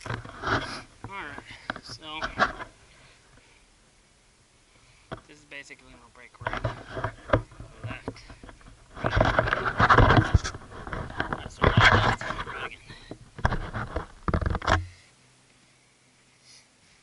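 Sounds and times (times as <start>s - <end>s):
camera handling scraping: 0.0s - 0.9s, 6.4s - 14.9s.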